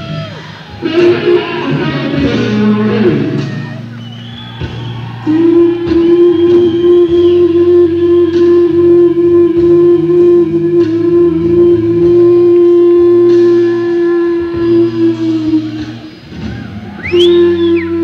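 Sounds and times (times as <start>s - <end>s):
bass notes: 0.0s - 18.0s
electric guitar sustained note: 0.8s - 3.8s, 5.3s - 16.1s.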